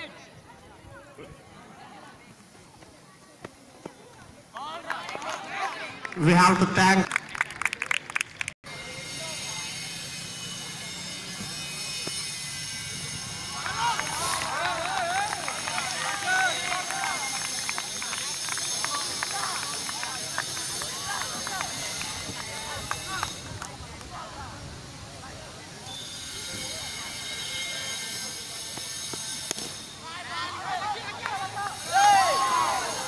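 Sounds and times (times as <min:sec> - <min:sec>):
people chattering and calling out: 0:00.0 - 0:33.0.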